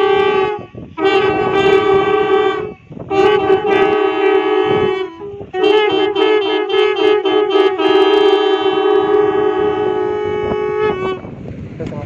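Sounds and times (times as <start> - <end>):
conch shells blown together: 0.0 - 11.4.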